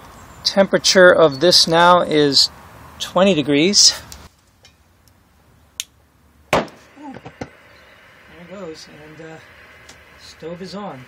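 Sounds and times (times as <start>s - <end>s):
gas igniting with loud pop: 6.5s - 11.0s.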